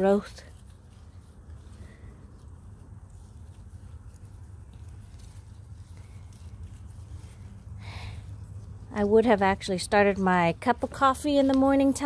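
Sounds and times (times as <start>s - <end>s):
leaves rustling and crackling: 0.0s - 12.0s
steady low rumble: 0.0s - 12.0s.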